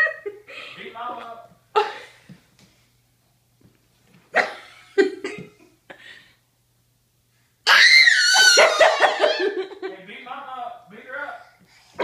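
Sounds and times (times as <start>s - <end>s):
toddler laughing: 8.2s - 9.8s.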